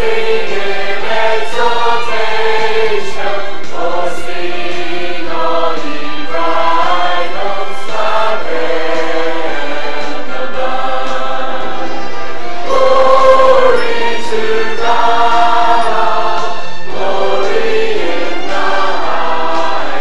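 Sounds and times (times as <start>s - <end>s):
choir singing long held notes: 0.0s - 20.0s.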